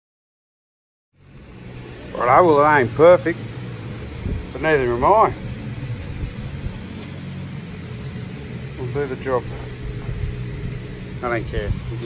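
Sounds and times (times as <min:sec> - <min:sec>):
low machine hum: 0:01.2 - 0:12.0.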